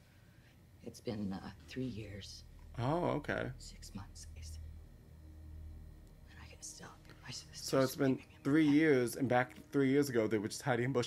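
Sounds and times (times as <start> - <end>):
low hum: 0.0 - 11.0
whispered speech: 3.6 - 4.6.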